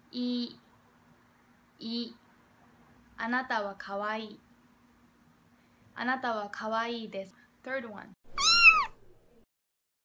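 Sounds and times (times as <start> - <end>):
cat meowing: 8.3 - 9.0.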